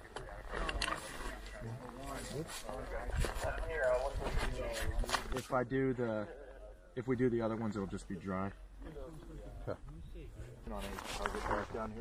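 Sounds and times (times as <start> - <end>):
men talking quietly: 0.0 - 12.0.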